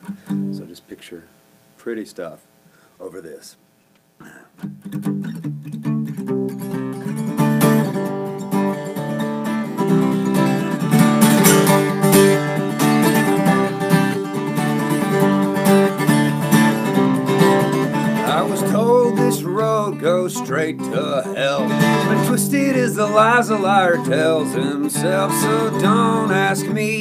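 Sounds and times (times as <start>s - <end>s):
acoustic guitar strummed: 0.0s - 0.7s, 4.2s - 27.0s
man singing: 18.0s - 27.0s.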